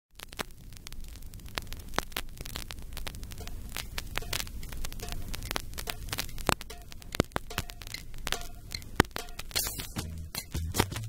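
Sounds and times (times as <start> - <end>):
vinyl record clicks and pops: 0.1 - 11.0.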